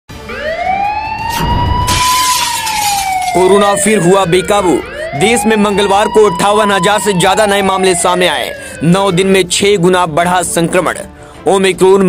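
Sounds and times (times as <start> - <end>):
rising siren-like wail: 0.2 - 9.7
whoosh: 1.3 - 3.0.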